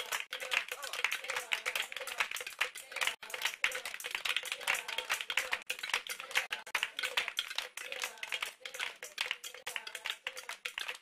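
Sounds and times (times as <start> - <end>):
fast rhythmic hand clapping: 0.0 - 11.0.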